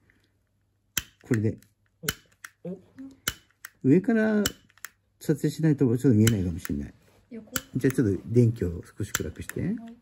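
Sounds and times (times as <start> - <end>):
piezo igniter snapping: 0.9 - 5.0, 6.1 - 6.9, 7.5 - 8.1, 9.0 - 9.8.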